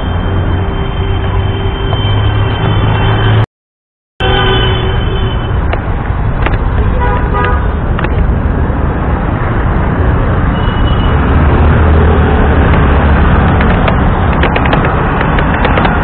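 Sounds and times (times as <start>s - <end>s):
vehicle horn toot: 0.0s - 3.4s, 4.2s - 5.6s, 6.9s - 7.8s
road traffic rumble: 0.0s - 3.5s, 4.2s - 16.0s.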